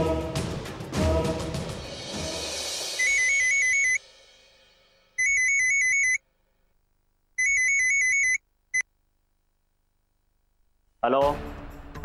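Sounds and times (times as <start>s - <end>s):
mobile phone ringtone trilling: 3.0s - 4.0s, 5.2s - 6.2s, 7.4s - 8.8s.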